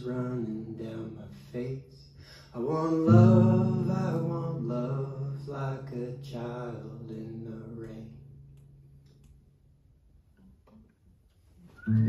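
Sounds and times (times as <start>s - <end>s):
man singing folk song: 0.0s - 8.3s
strummed acoustic guitar: 2.7s - 8.5s, 11.8s - 12.0s.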